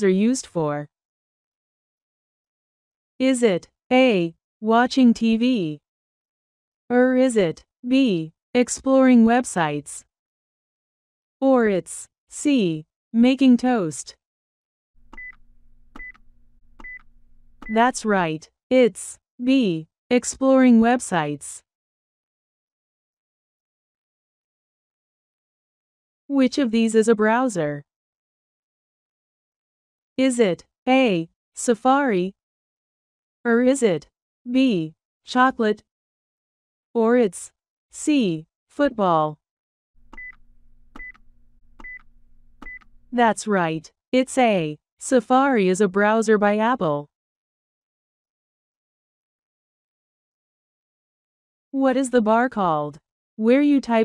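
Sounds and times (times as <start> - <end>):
high electronic beeps with clicks: 15.1 - 18.0, 40.1 - 43.0.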